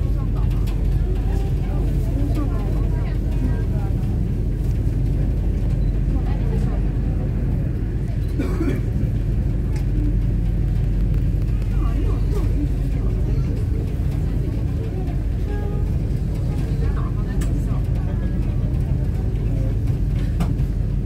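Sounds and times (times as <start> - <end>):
ferry engines rumbling: 0.0 - 21.0
indistinct passenger chatter: 0.0 - 21.0.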